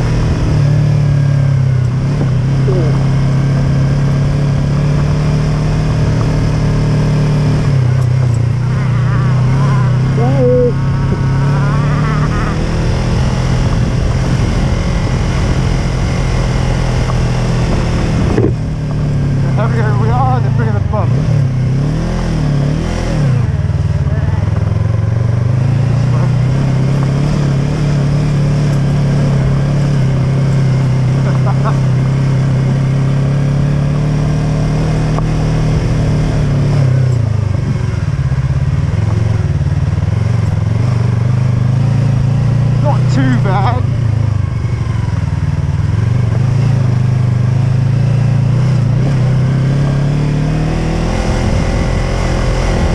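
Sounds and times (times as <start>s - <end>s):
motorcycle engine running: 0.0s - 52.9s.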